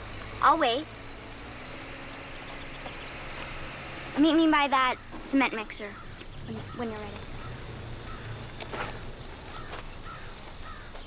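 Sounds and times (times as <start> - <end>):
outdoor background hiss: 0.0 - 11.0
crows cawing faintly: 4.8 - 11.0.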